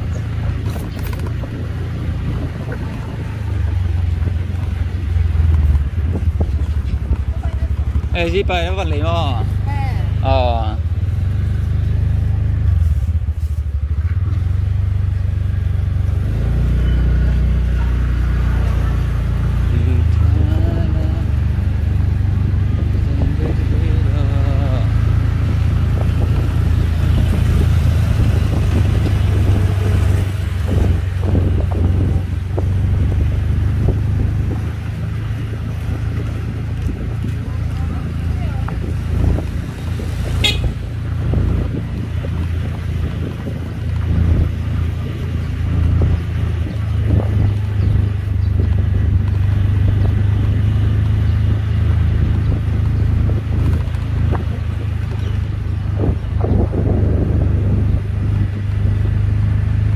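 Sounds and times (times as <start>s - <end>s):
wind on microphone: 0.0s - 10.2s, 17.6s - 59.9s
motorcycle engine rumble: 0.0s - 59.9s.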